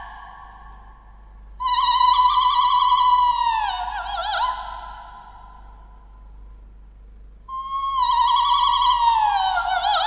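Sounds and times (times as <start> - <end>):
woman singing operatic high note: 1.6 - 4.9.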